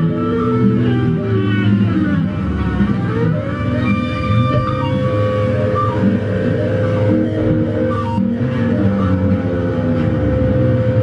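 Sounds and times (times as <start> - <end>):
electric bass drone: 0.0 - 11.0.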